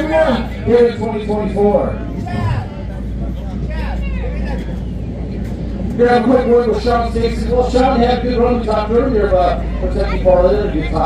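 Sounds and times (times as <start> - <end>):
race car engines rumbling: 0.0 - 11.0.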